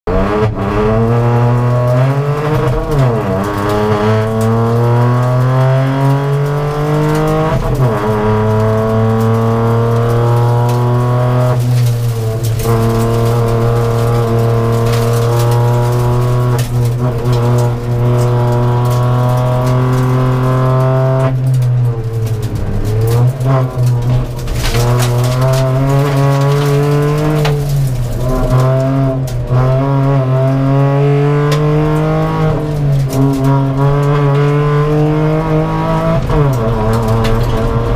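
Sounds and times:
rally car engine running hard: 0:00.1 - 0:37.9.

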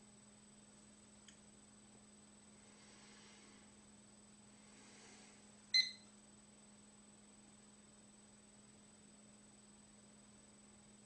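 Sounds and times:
faint steady hum: 0:00.0 - 0:11.0
stopwatch beep: 0:05.7 - 0:06.1.

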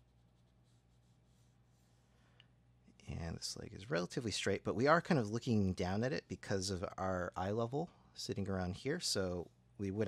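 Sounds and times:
pencil scratching on paper: 0:00.0 - 0:02.0
steady low hum: 0:00.0 - 0:10.0.

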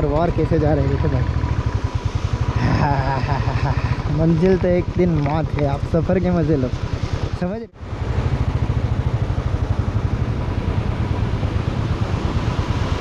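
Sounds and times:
motorcycle engine running: 0:00.0 - 0:13.0
road and wind noise: 0:00.0 - 0:13.0.

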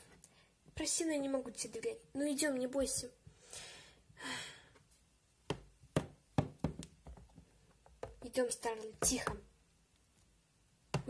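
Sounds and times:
breathy sigh: 0:03.4 - 0:04.8
plastic toys tapping on plastic: 0:05.5 - 0:09.5.

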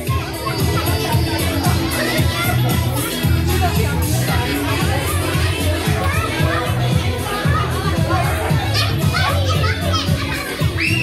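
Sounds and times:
children shouting and chattering: 0:00.0 - 0:11.0
dance music: 0:00.0 - 0:11.0
child high-pitched shout: 0:08.6 - 0:11.0.

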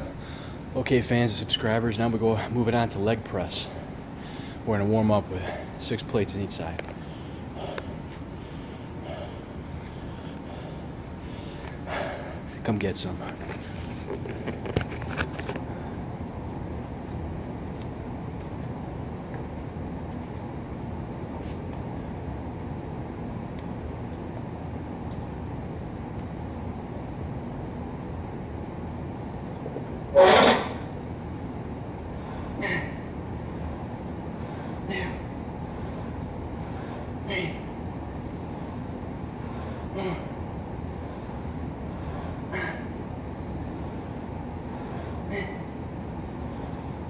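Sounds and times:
gym room hum: 0:00.0 - 0:47.0
man grunting: 0:34.8 - 0:35.3, 0:37.2 - 0:37.7, 0:39.9 - 0:40.4, 0:45.2 - 0:45.7.

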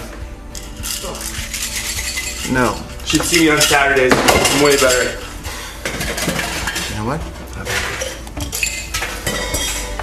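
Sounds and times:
glasses and bottles clinking: 0:00.6 - 0:10.0.

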